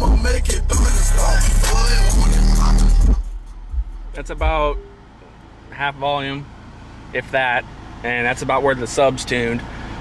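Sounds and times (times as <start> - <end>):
heavy bass rumble: 0.0 - 5.9
hip hop with rapping on car stereo: 0.0 - 9.8.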